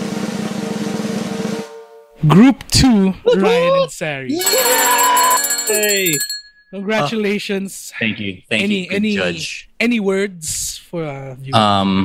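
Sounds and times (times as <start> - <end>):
drum roll: 0.0 - 1.8
short ringing tone: 4.4 - 6.8.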